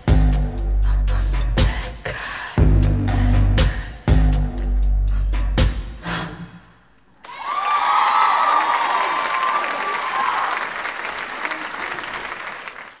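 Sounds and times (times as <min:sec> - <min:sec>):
cheering with whoops: 0:07.2 - 0:12.4
audience applauding: 0:07.2 - 0:13.0.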